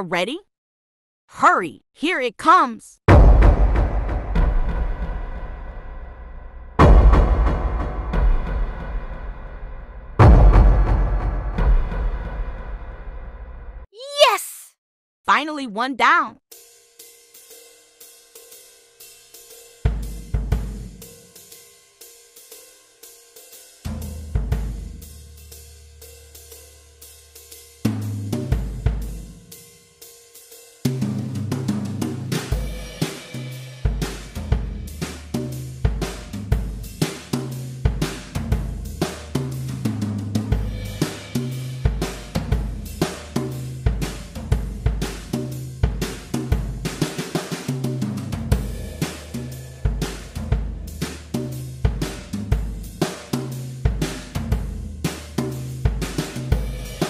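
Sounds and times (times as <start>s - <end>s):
drum-led music: 19.3s - 21.5s, 30.8s - 57.0s.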